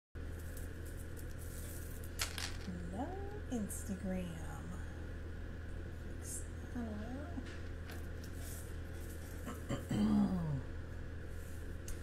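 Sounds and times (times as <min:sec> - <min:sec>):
low mechanical equipment drone: 0:00.2 - 0:12.0.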